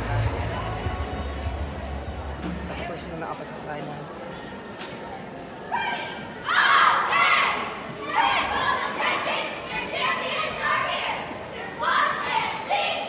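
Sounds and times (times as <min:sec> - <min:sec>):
girls shouting a cheer: 0:05.7 - 0:13.0.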